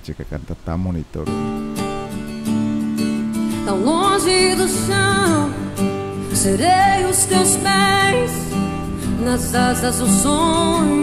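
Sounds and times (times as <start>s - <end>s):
acoustic guitar: 1.3s - 11.0s
woman singing: 3.5s - 11.0s.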